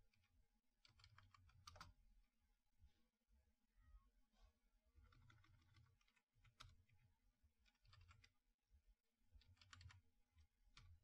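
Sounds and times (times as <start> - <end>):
computer keyboard keystrokes: 7.8 - 8.3, 9.6 - 10.0.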